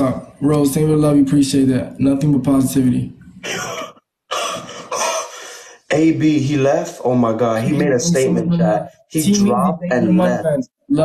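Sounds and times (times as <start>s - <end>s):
man coughing and clearing throat: 3.4s - 6.4s.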